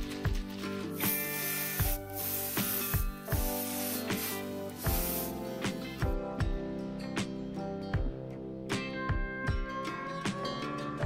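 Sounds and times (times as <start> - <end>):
background music with steady beat: 0.0 - 11.0
aerosol spray hissing: 1.0 - 6.1.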